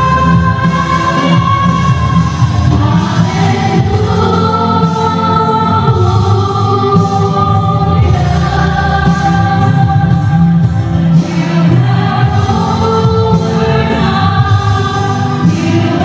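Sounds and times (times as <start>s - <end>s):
electric guitar and band: 0.0s - 16.0s
voices singing together: 0.0s - 16.0s.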